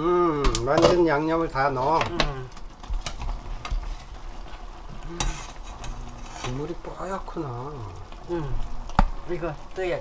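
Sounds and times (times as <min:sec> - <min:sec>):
broth bubbling: 0:00.0 - 0:10.0.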